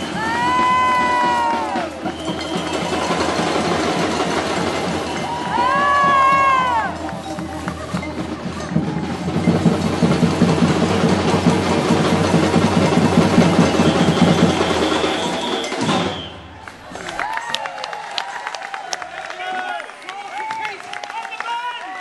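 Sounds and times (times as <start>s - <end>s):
bass and snare drums playing: 0.0s - 17.2s.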